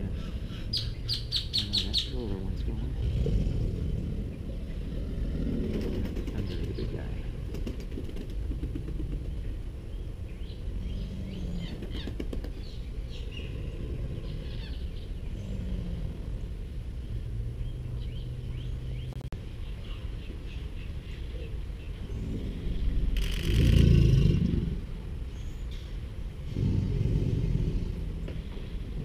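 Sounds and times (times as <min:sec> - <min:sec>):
birds chirping: 0:00.0 - 0:29.0
alligators bellowing: 0:02.5 - 0:07.4, 0:13.1 - 0:17.6, 0:21.4 - 0:25.1, 0:26.4 - 0:29.0.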